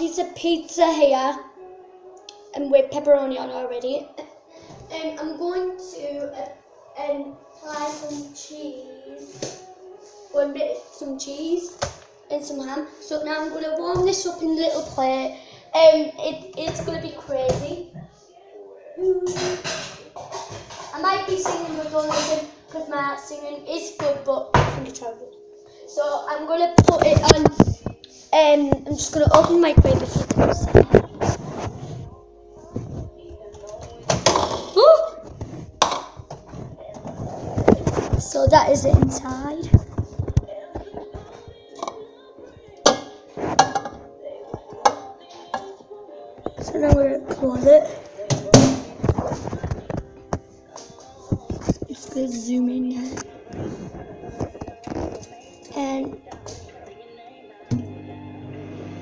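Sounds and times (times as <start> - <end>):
microwave oven humming: 57.7 - 59.0.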